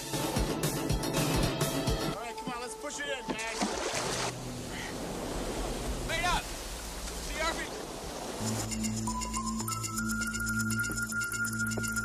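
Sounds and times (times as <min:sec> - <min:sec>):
wind and water rushing: 0:02.3 - 0:09.2.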